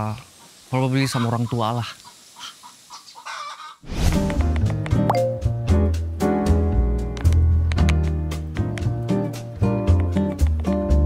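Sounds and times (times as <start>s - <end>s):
chickens clucking: 0.0s - 3.8s.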